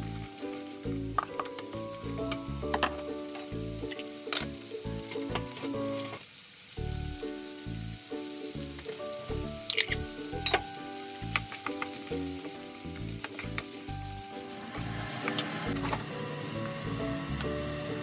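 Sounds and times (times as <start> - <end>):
soft background music: 0.0 - 6.2, 6.8 - 18.0
food sizzling in a frying pan: 0.0 - 18.0
wooden spatula clicking on pan: 11.2 - 12.1.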